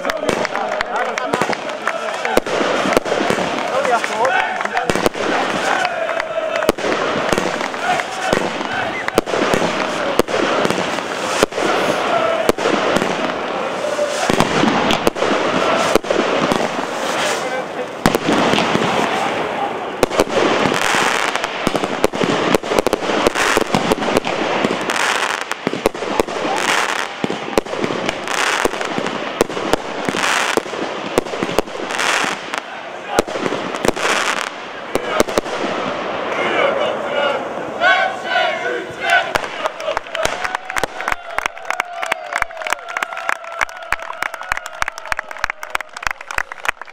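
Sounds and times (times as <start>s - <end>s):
fireworks banging and crackling: 0.0s - 36.4s, 38.9s - 46.9s
crowd voices: 0.0s - 46.9s.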